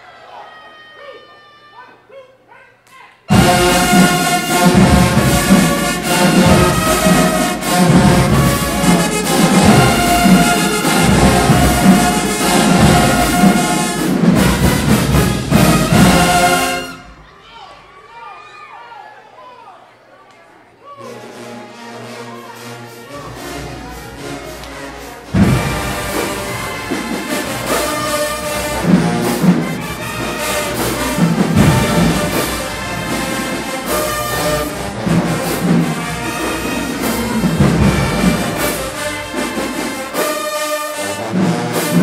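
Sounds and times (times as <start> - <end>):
marching band playing: 3.3 - 17.3, 21.0 - 42.0.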